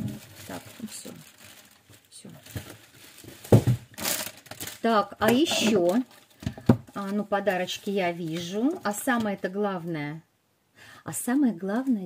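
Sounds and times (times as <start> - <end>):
bubble wrap crinkling: 0.0 - 9.9, 11.4 - 12.0.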